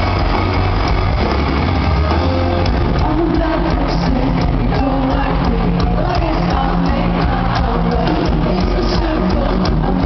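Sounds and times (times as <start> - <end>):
live rock band playing loud: 0.0 - 10.0.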